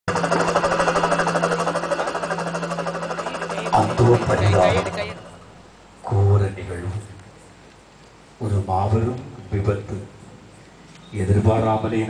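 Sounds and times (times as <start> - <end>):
rapid rattling buzz: 0.1 - 6.3
constant low hum: 0.1 - 11.6
person speaking: 3.1 - 5.5.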